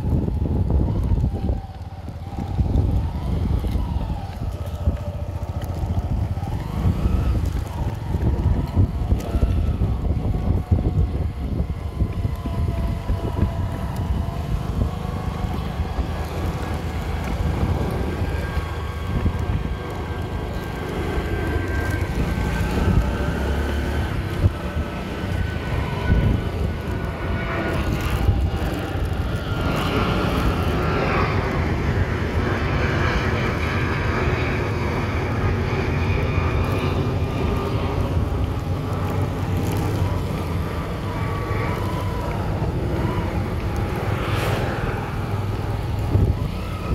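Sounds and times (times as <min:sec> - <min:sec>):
wind rumble on microphone: 0:00.0 - 0:46.9.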